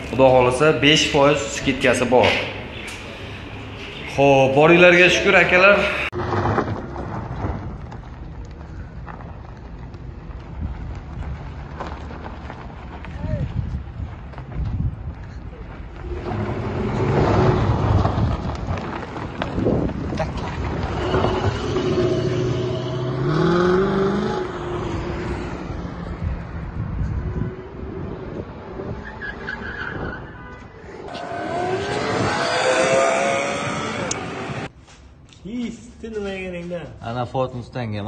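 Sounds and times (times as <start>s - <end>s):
tyres skidding and squealing: 0.0s - 9.4s, 15.2s - 34.7s
car engine revving: 16.0s - 19.0s, 20.2s - 26.3s, 31.1s - 34.7s.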